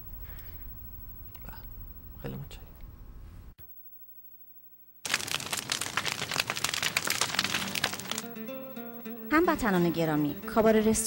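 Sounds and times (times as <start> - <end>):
fire crackling and popping: 5.0 - 8.3.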